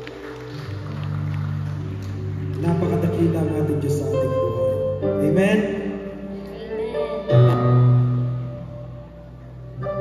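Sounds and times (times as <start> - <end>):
worship band playing soft chords: 0.0 - 10.0.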